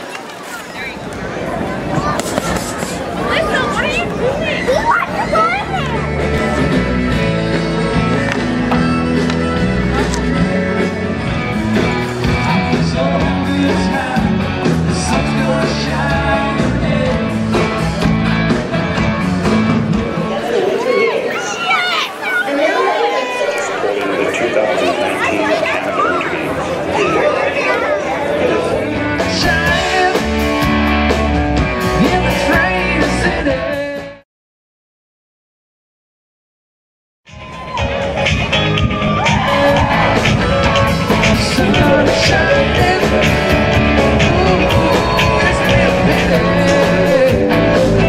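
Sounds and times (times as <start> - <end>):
voices: 0.0 - 18.0, 19.9 - 30.3, 37.8 - 48.0
children chattering and calling out: 0.0 - 30.2, 37.5 - 48.0.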